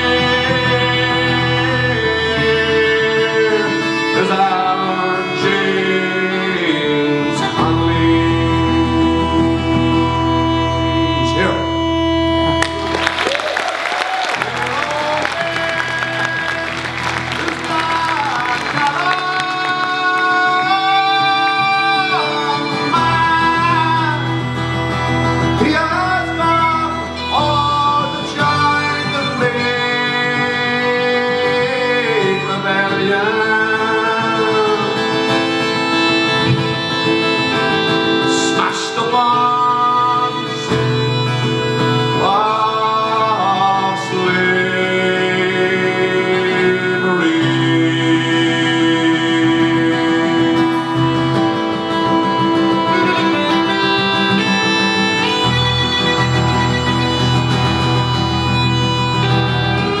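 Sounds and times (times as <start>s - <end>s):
man singing a slow ballad: 0.0s - 12.0s, 14.7s - 24.6s, 25.6s - 36.1s, 37.1s - 41.3s, 42.1s - 51.3s
guitar accompaniment: 0.0s - 60.0s.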